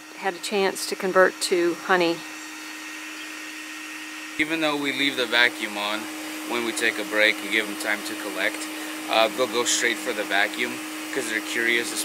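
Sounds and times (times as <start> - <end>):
vacuum motor hum: 0.0 - 12.0.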